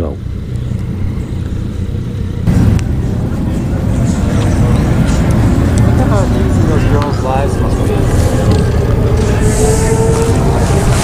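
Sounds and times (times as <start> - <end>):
motorcycle engines idling: 0.0 - 11.0
rough loud engine noise: 0.0 - 11.0.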